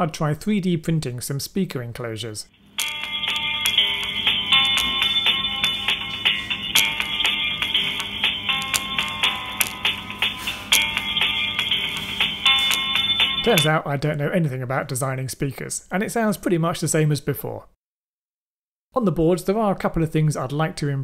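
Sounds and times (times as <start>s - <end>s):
music through small speakers: 3.2s - 13.7s.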